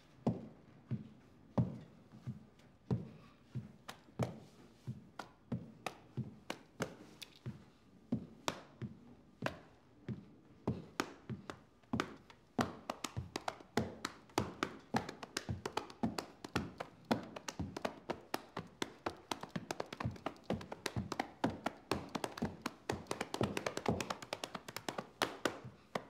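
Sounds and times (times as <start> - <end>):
hands slapping chest and thighs: 3.8 - 4.4, 5.2 - 7.4, 8.4 - 8.8, 10.9 - 26.0.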